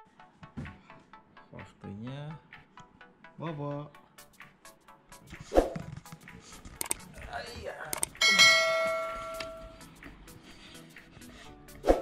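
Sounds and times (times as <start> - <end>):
bell-like chime: 8.2 - 9.8.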